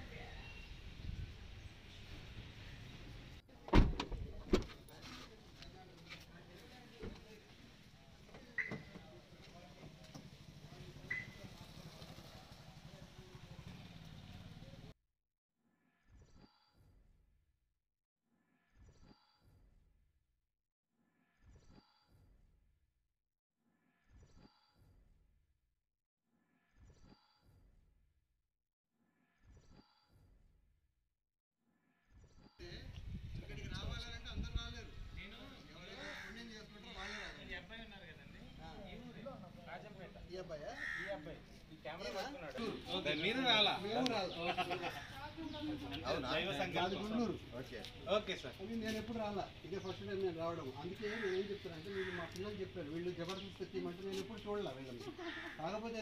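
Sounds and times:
people talking: 0:32.6 - 0:55.3.

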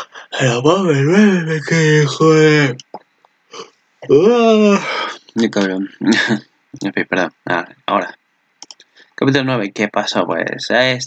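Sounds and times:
man sniffing: 0:00.0 - 0:00.5, 0:04.8 - 0:05.4
man's drawn-out exclamation: 0:00.0 - 0:02.8, 0:04.1 - 0:07.7.

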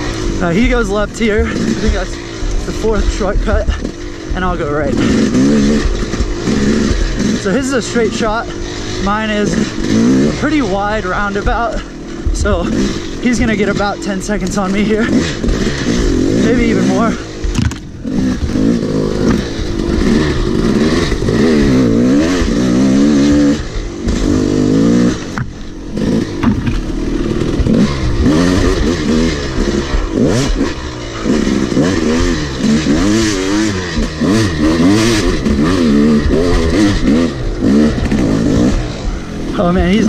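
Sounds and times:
dirt bike engine revving: 0:00.0 - 0:40.0.

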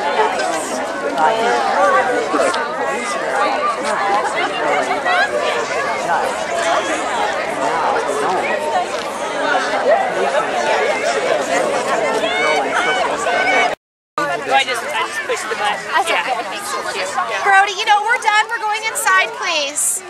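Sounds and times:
crowd chattering and calling out: 0:00.0 - 0:20.0.

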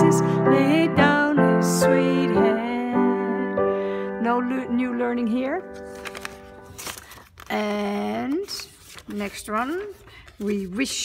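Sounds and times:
paper rustling: 0:05.6 - 0:11.0.

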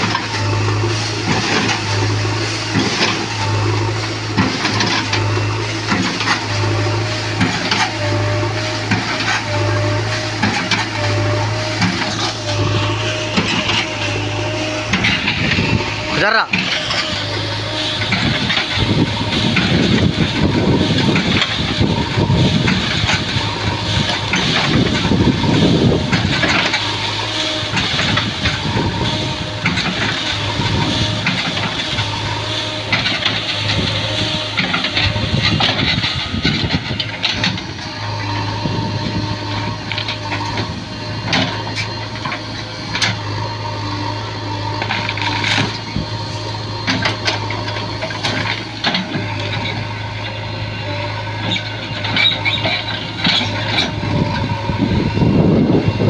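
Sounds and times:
diesel engine running under load: 0:00.0 - 0:56.0.

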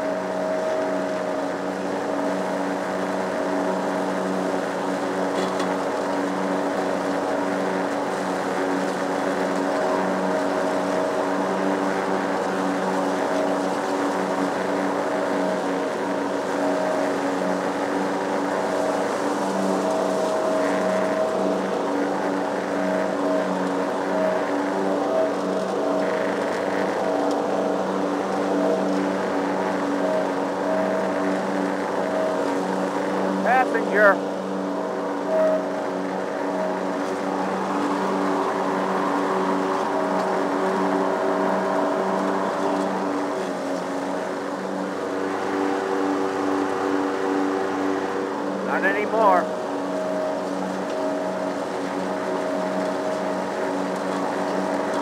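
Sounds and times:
lawn mower engine running: 0:00.0 - 0:55.0.

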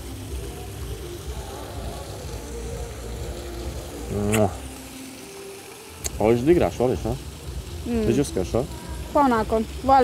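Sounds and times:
person murmuring: 0:04.1 - 0:04.6.

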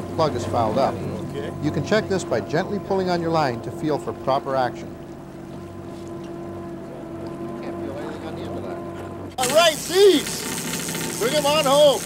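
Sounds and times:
men's voices: 0:00.0 - 0:05.0, 0:06.8 - 0:10.5
boat motor drone: 0:00.0 - 0:12.0
hissy open deck noise: 0:09.4 - 0:12.0.

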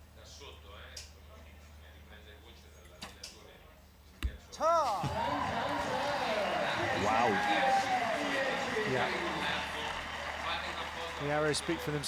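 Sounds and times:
crowd cheering and shouting: 0:04.6 - 0:12.0.

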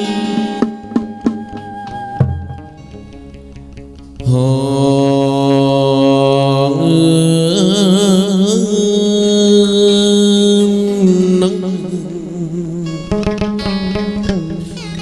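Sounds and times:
man singing long note: 0:04.2 - 0:14.8.

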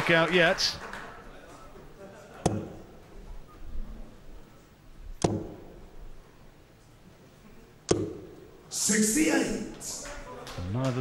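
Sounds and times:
low hall murmur: 0:00.0 - 0:05.0, 0:05.8 - 0:11.0
darts thudding into dartboard: 0:02.4 - 0:02.8, 0:05.2 - 0:05.8, 0:07.9 - 0:08.3.

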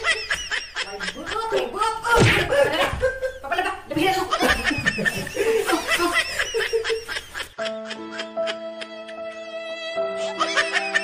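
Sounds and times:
person laughing: 0:04.3 - 0:09.0.

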